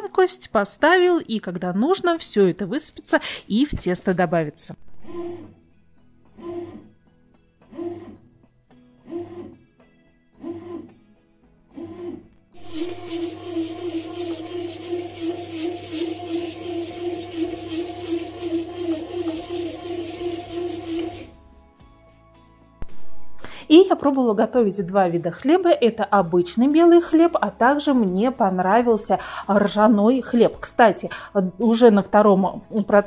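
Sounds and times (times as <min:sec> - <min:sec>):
bread machine motor humming: 0:06.4 - 0:06.9, 0:11.8 - 0:21.3
rattling churn of kneading: 0:11.8 - 0:21.3.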